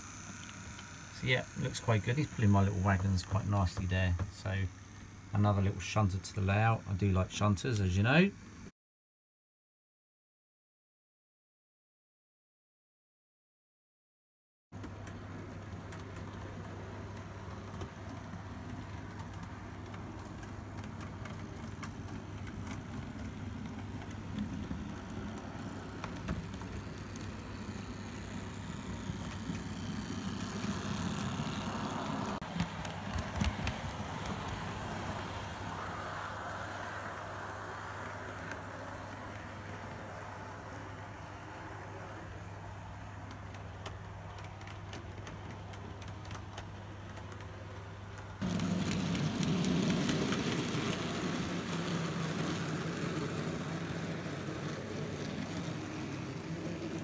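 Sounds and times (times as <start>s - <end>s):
model train motor whirr: 0.0s - 8.7s, 14.9s - 40.6s, 48.4s - 57.0s
steady low hum: 0.0s - 8.7s.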